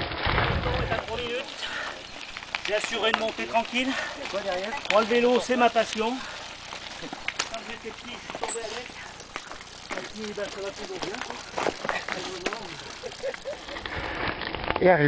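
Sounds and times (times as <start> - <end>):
crunching footsteps on gravel: 0.0 - 14.9.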